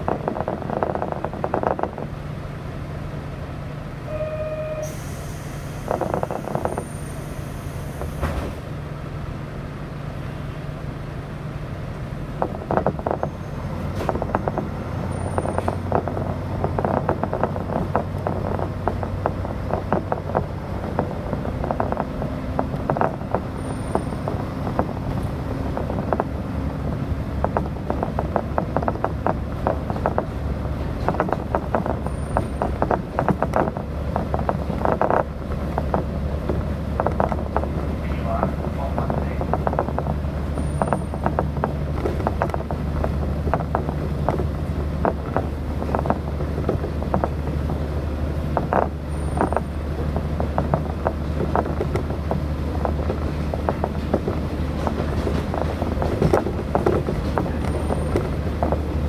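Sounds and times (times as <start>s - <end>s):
diesel railcar engine: 0.0s - 59.0s
train rattling and clicking: 0.0s - 59.0s
short beep: 4.1s - 5.3s
air hissing: 4.8s - 8.6s.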